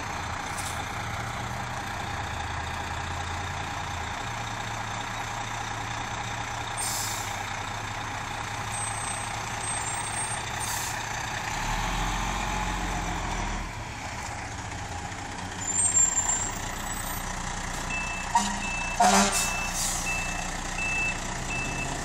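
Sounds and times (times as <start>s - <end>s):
diesel engine running: 0.0s - 22.0s
reversing alarm beeping: 17.9s - 22.0s.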